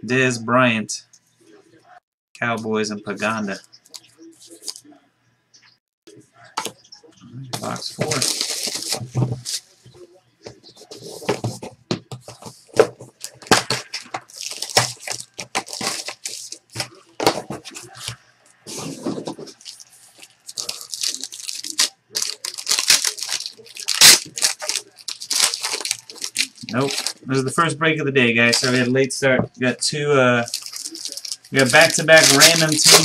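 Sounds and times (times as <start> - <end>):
plastic wrapping crinkling and tearing: 7.6 - 9.6, 13.2 - 17.0, 18.7 - 27.2, 28.5 - 28.9, 30.4 - 33.0
cardboard and packs rustling: 7.6 - 27.2, 30.4 - 33.0.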